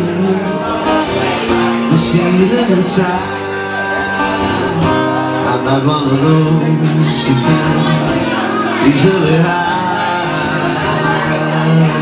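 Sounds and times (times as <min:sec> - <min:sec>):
acoustic guitar: 0:00.0 - 0:12.0
man singing: 0:00.0 - 0:12.0.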